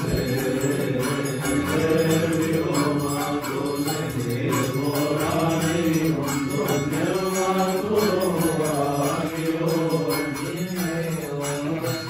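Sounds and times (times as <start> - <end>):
men chanting a hymn: 0.0 - 12.0.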